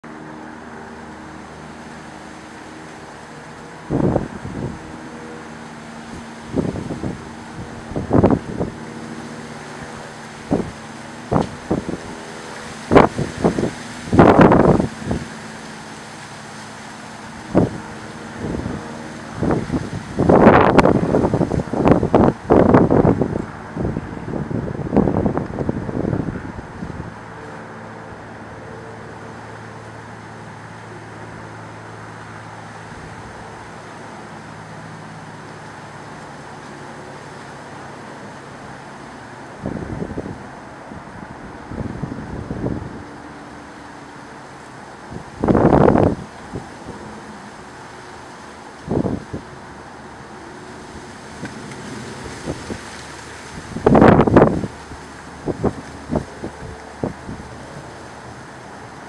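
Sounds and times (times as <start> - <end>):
low mechanical hum: 0.0 - 59.0.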